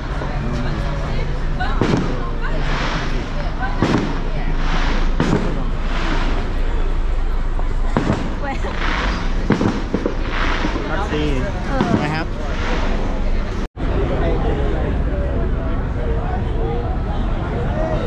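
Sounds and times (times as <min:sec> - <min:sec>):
fireworks booming: 0:00.0 - 0:13.7
crowd voices: 0:00.0 - 0:18.0
fireworks crackle: 0:01.8 - 0:13.3.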